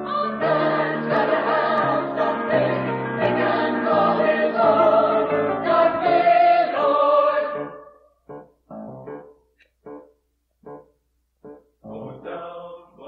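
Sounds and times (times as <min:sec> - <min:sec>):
choir singing in harmony: 0:00.0 - 0:08.0, 0:12.0 - 0:13.0.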